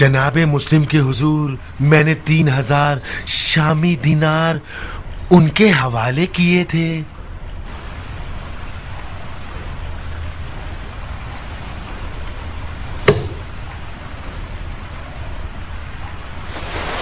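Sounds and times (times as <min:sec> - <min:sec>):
steady hiss: 0:01.2 - 0:17.0
low hum: 0:07.1 - 0:16.4.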